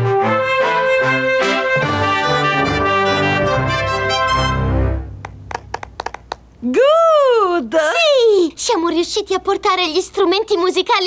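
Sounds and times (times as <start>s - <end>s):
trumpets and drums band tune: 0.0s - 5.5s
hand claps: 5.2s - 6.5s.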